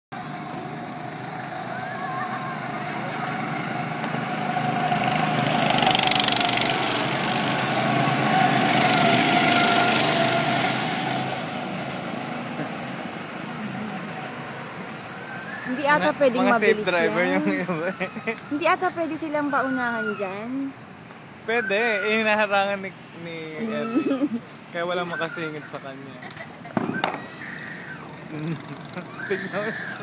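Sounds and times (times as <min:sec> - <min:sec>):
go-kart engines driving past: 0:00.2 - 0:30.0.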